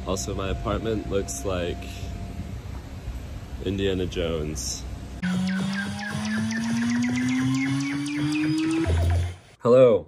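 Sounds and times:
synth riser gliding upward: 5.2s - 9.6s.

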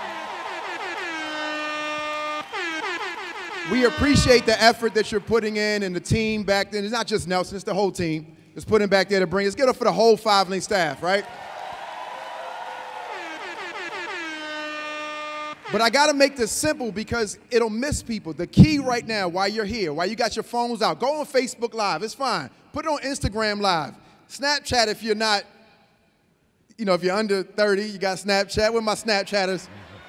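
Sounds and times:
audience applauding and cheering: 0.0s - 5.3s, 11.1s - 15.7s, 29.7s - 30.0s
air horn blasts: 0.0s - 5.8s, 12.9s - 17.2s.

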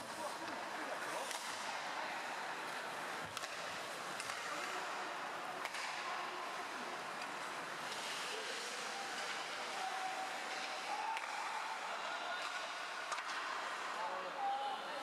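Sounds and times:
skates on ice: 0.0s - 13.9s
crowd voices: 0.0s - 15.0s.

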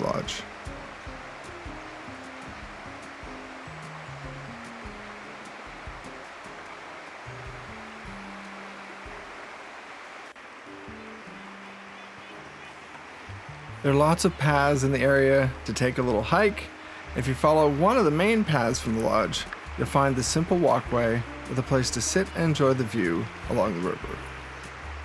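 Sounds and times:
river rushing over rocks: 0.0s - 25.0s
soft background music: 0.0s - 25.0s.

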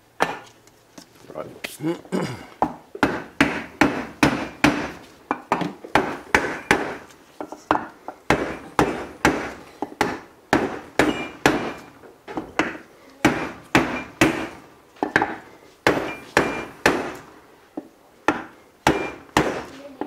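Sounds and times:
hammer striking wooden block: 2.6s - 7.1s, 7.7s - 17.2s, 18.3s - 19.7s.

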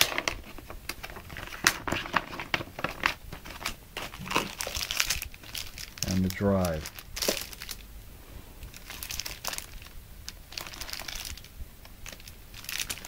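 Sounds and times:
packaging rustling and crinkling: 0.0s - 7.9s, 8.6s - 13.0s.

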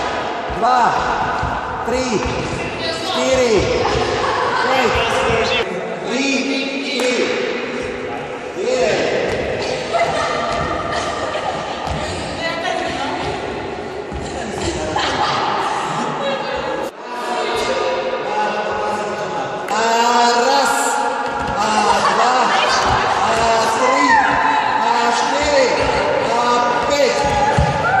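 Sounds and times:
voices echoing in a hall: 0.0s - 28.0s.

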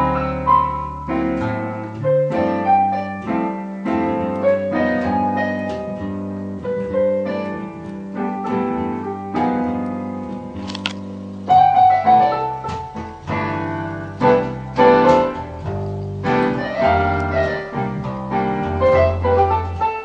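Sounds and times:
digital piano slow piece: 0.0s - 20.0s.

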